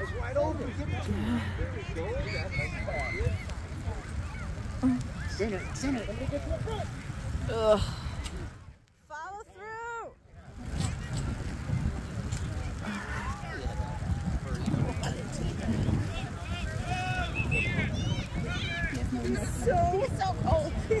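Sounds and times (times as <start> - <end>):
distant shouts and calls: 16.2 - 19.1.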